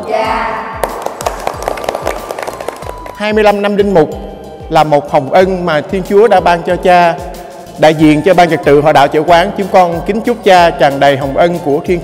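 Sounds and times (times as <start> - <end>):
background music with steady beat: 0.0 - 12.0
group clapping hands: 0.8 - 3.6.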